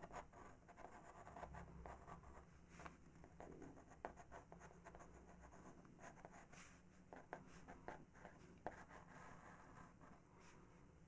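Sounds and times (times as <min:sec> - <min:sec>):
pencil scratching on card: 0:00.0 - 0:02.4.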